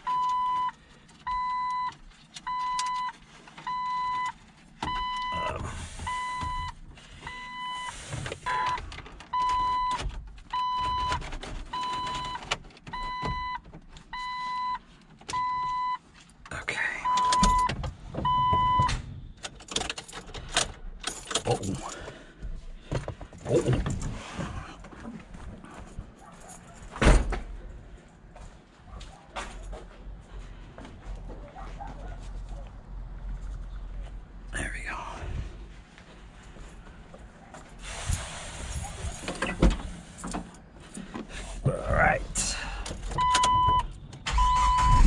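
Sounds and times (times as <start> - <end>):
dashboard warning chime: 0.0 - 7.9, 17.0 - 18.9, 43.2 - 45.0.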